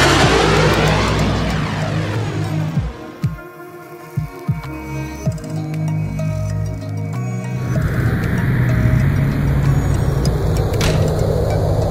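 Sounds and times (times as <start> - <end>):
jet flyby roar: 0.0 - 4.2, 7.6 - 11.9
low music bed: 0.0 - 11.9.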